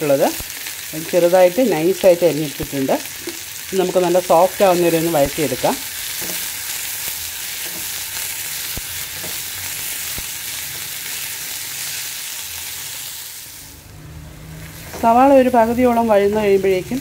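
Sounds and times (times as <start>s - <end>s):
onions sizzling in oil: 0.0s - 17.0s.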